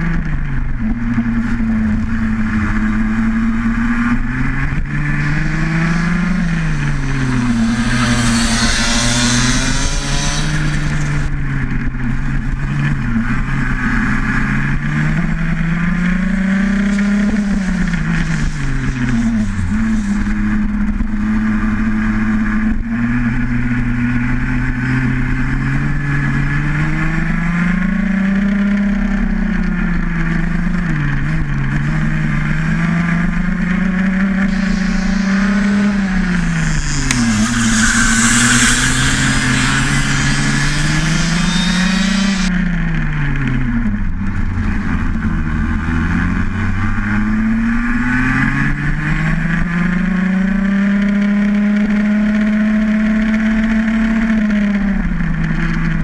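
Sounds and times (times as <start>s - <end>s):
kart engine revving: 0.0s - 29.0s, 30.2s - 43.5s
rushing hiss: 5.5s - 11.3s, 34.4s - 42.5s.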